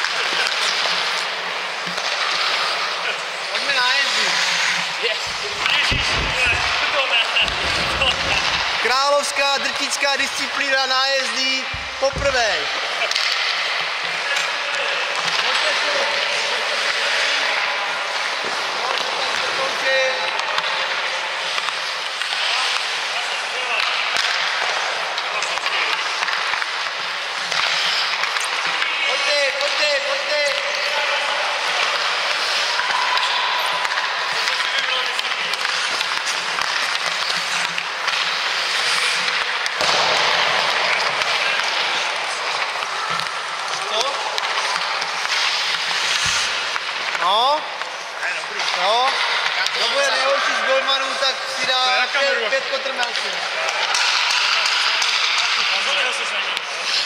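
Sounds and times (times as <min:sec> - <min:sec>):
hockey sticks and pucks clacking: 0:00.0 - 0:57.0
skates scraping on ice: 0:00.2 - 0:14.5, 0:15.1 - 0:50.6, 0:53.1 - 0:57.0.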